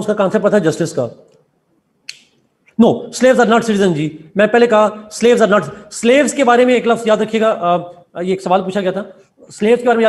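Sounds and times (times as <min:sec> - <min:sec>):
man speaking: 0:00.0 - 0:01.3, 0:02.7 - 0:10.0.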